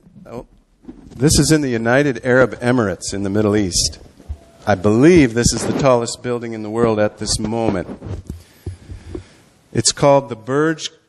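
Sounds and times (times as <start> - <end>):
microphone handling thumps and rubbing: 0.0 - 9.4.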